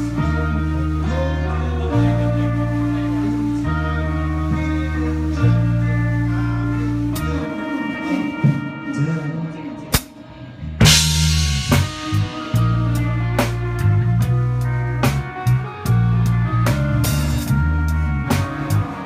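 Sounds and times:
live band playing: 0:00.0 - 0:19.0
cymbal crash: 0:10.8 - 0:12.9
drum hits: 0:10.8 - 0:13.7.

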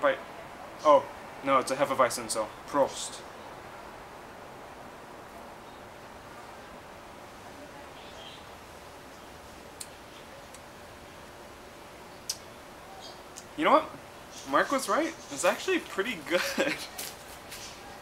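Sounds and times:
faint hum: 0:00.0 - 0:18.0
steady low hiss: 0:00.0 - 0:18.0.

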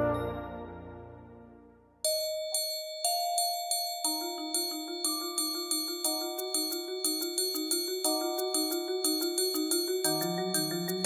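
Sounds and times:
marching band chord: 0:00.0 - 0:01.7
bell-like struck notes: 0:00.0 - 0:11.0.

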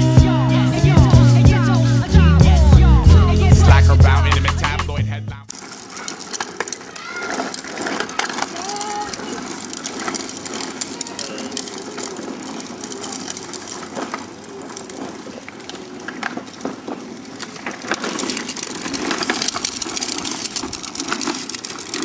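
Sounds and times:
plastic wheels rattling on concrete: 0:00.0 - 0:22.0.

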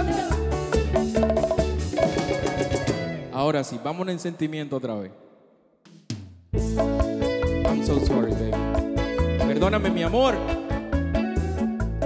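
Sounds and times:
hand percussion strikes: 0:00.0 - 0:03.1
bass guitar: 0:00.0 - 0:03.3, 0:06.5 - 0:12.0
live band playing: 0:00.0 - 0:03.8, 0:06.1 - 0:12.0.

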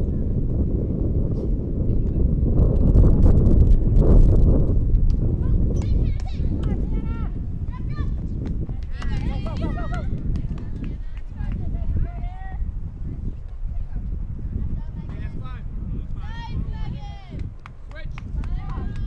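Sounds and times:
wind rumbling on microphone: 0:00.0 - 0:19.0.

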